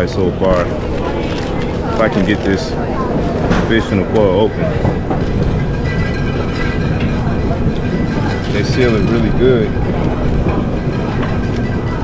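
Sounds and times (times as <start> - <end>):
faint voices: 0.0 - 12.0
wind buffeting microphone: 0.0 - 12.0.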